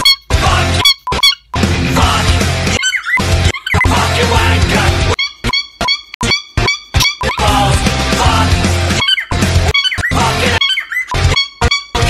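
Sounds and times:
heavy metal song: 0.3s - 0.8s, 1.6s - 5.2s, 7.4s - 10.6s
cockatiel squeaky calls: 2.8s - 3.9s, 5.1s - 7.4s, 9.0s - 12.0s.

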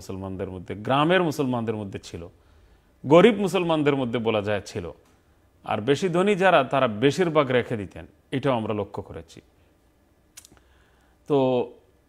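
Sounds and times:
man speaking: 0.0s - 2.3s, 3.0s - 5.0s, 5.6s - 9.5s, 11.3s - 11.8s.

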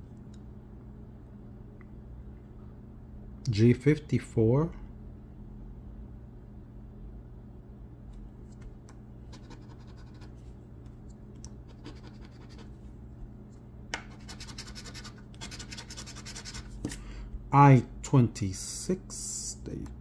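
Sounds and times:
coin scraping scratch card: 9.3s - 10.3s, 11.7s - 12.7s, 14.1s - 16.8s.

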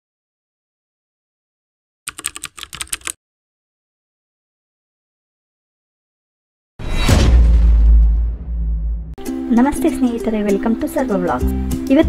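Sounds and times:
keyboard typing: 2.1s - 3.2s.

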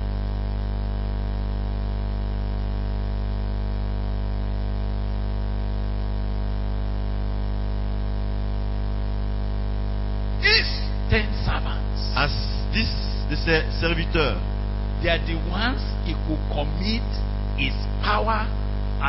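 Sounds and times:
electrical mains hum: 0.0s - 19.0s
speech: 10.4s - 18.6s.

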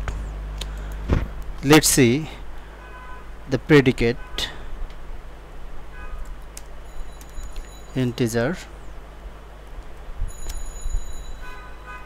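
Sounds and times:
steady low hum: 0.0s - 12.0s
high-pitched ringing tone: 6.8s - 8.3s, 10.3s - 12.0s.

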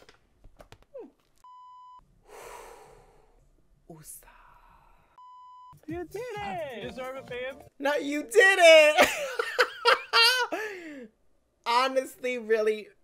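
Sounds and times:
censor bleep: 1.4s - 2.0s, 5.2s - 5.8s.

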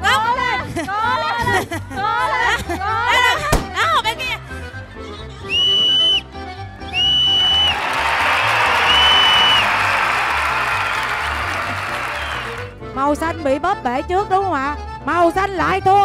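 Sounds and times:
referee's whistle blasts: 7.0s - 10.1s
crowd clapping and cheering: 7.0s - 12.8s.

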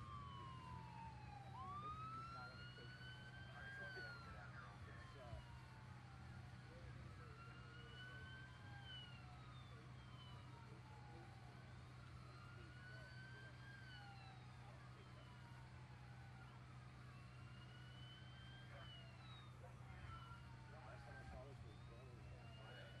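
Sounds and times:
faint siren wailing: 0.0s - 23.0s.

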